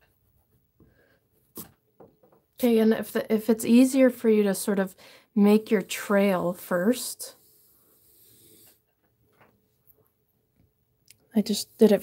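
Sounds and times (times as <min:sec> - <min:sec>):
pencil scratching on paper: 0:05.4 - 0:08.8.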